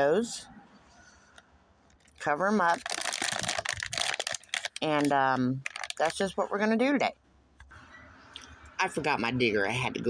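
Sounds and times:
plastic bag crinkling: 2.0s - 6.3s
person speaking: 2.2s - 7.1s.

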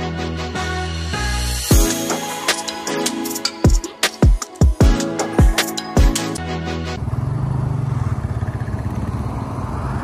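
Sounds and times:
intro music: 0.0s - 7.0s
vehicle engine running: 7.0s - 10.0s.

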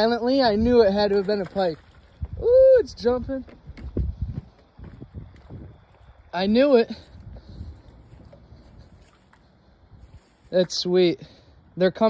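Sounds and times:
wind on microphone: 0.0s - 9.2s.

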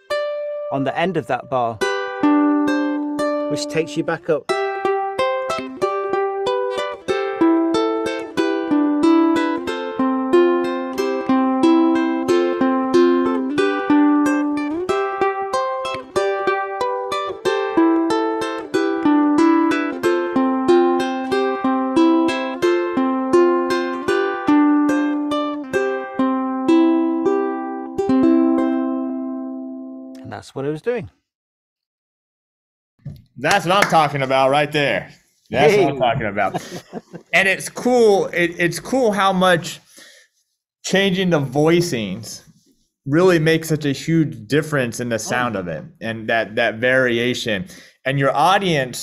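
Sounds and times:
fingerpicked ukulele: 0.0s - 0.8s, 1.8s - 30.2s.

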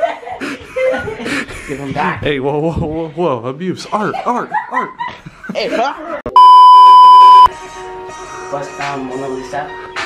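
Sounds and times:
censor bleep tone: 6.4s - 7.5s.

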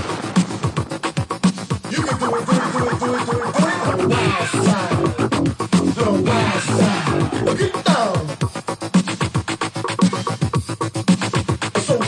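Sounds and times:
vinyl record scratching: 0.0s - 12.0s.

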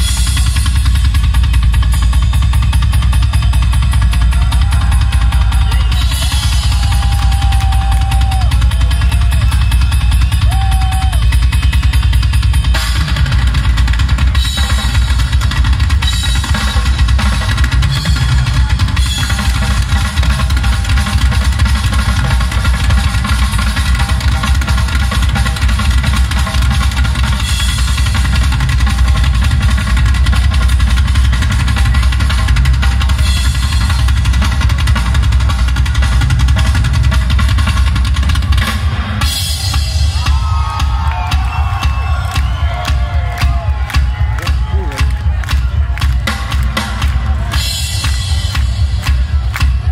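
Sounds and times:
heavy bass drum: 0.0s - 49.9s
rock band playing live: 0.0s - 49.9s.

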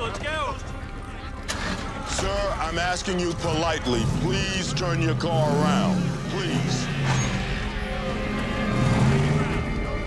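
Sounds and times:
background music with held tones: 0.0s - 10.0s
car engine running: 1.5s - 10.0s.

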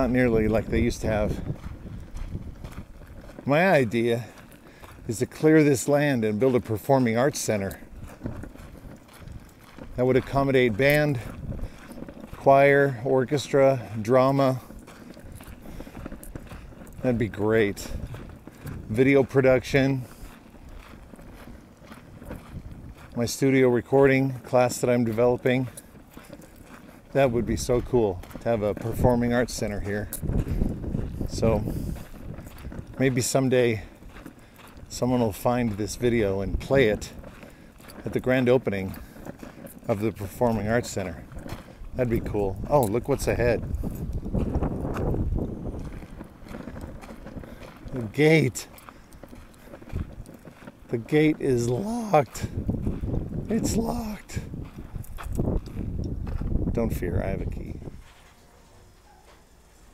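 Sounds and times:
wind buffeting microphone: 0.0s - 58.2s
footsteps on gravel: 0.0s - 59.9s.

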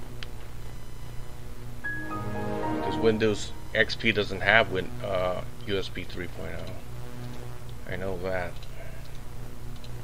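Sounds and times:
steady low hum: 0.0s - 10.0s
computer shutdown chime: 1.9s - 4.5s.

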